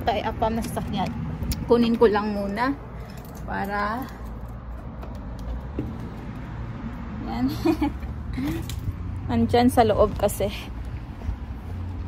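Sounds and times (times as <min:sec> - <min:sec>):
faint footsteps: 0:09.8 - 0:12.0.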